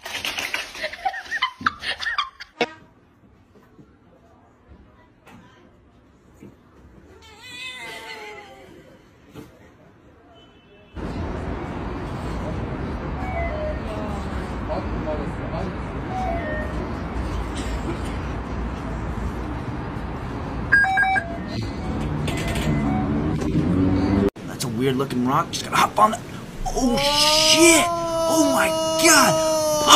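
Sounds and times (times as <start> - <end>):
station background noise: 24.4 - 29.9
cat meowing: 26.7 - 29.9.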